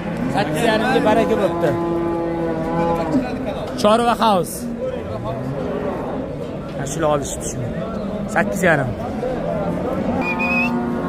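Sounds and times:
cow mooing: 0.2 - 3.4, 5.0 - 6.6, 9.8 - 11.0.

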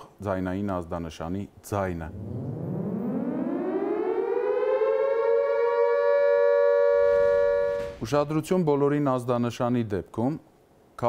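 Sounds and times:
electric siren wailing: 2.1 - 8.0.

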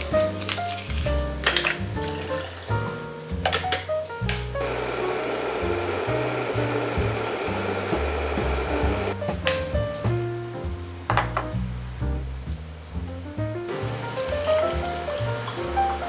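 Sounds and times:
background music: 0.0 - 12.4, 13.0 - 16.0
electric kettle hissing: 4.6 - 9.2.

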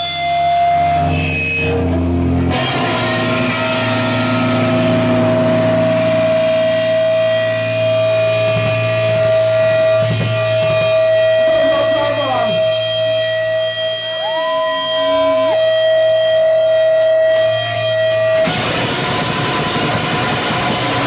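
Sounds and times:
looping pitch sweep: 0.0 - 21.0
low amplifier hum: 0.0 - 21.0
noise rock band with distorted guitars: 0.0 - 21.0
steady droning tone: 0.0 - 21.0.

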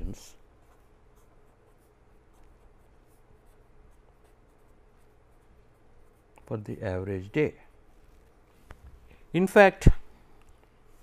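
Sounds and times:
pen scratching on paper: 0.4 - 6.3.

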